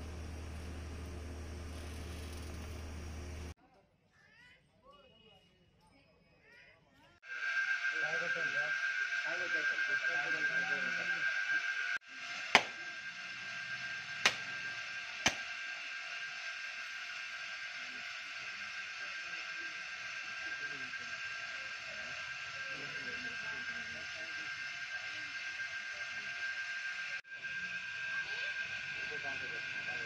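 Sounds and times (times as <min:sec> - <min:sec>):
coconut knocking on hard surface: 0:12.6 - 0:12.8.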